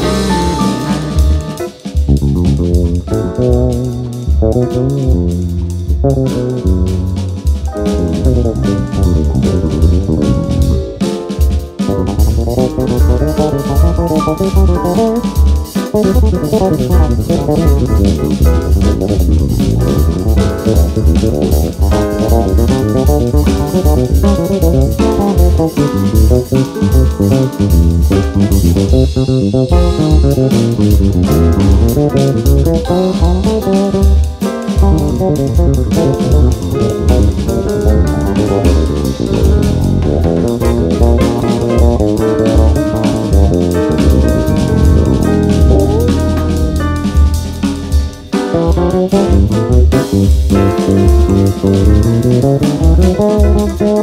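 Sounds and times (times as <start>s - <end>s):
busy bass line: 0.0s - 54.0s
drum kit playing: 0.0s - 54.0s
instrumental jazz band: 0.0s - 54.0s.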